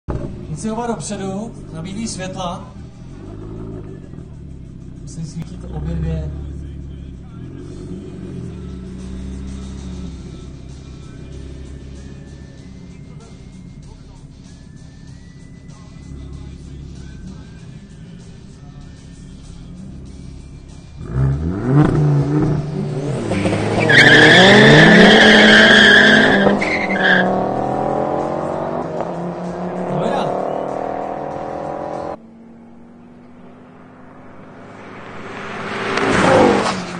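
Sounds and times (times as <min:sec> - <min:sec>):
car rushing past: 0:00.1 - 0:13.9, 0:21.0 - 0:36.9
car engines revving: 0:00.1 - 0:36.9
tyre squeal: 0:23.2 - 0:27.5.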